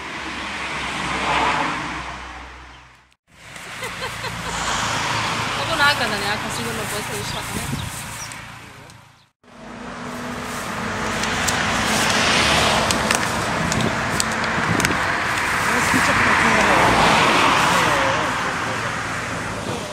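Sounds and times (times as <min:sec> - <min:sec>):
cars passing on road: 0:00.0 - 0:19.9.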